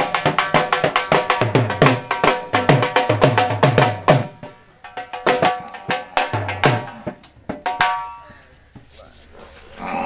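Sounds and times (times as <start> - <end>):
dhol drum strokes: 0.0 - 8.3
voice: 8.2 - 10.0.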